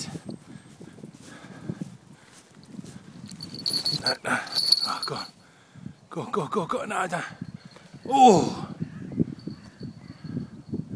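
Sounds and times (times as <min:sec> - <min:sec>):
footsteps through grass: 0:00.0 - 0:04.2.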